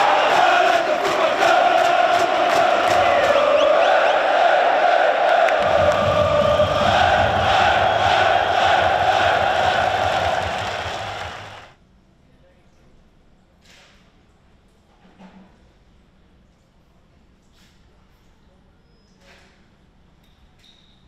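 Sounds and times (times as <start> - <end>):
stadium crowd chanting: 0.0 - 11.8.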